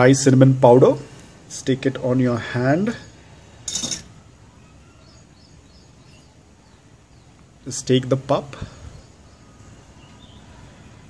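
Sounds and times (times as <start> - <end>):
faint bird chirps: 2.5 - 11.0
metal jar lid scraping clink: 3.6 - 4.1.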